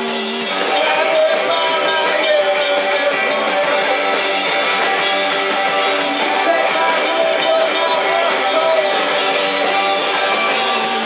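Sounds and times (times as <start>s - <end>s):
electric guitar: 0.0s - 11.0s
live rock band playing: 0.0s - 11.0s.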